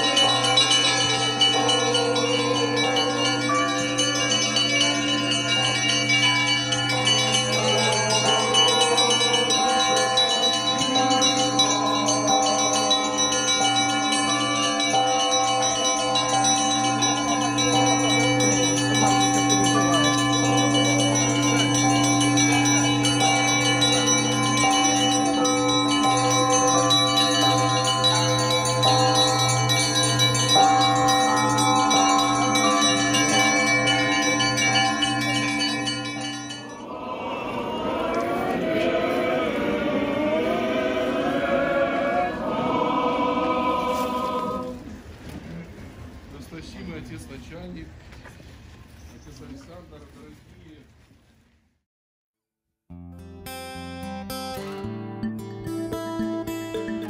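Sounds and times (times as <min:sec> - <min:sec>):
church bells pealing: 0:00.0 - 0:44.8.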